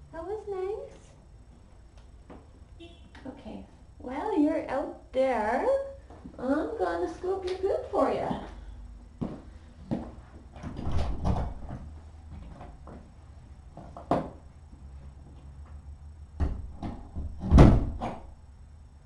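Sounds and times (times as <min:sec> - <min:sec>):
knocks and thumps: 0:16.4 - 0:18.3.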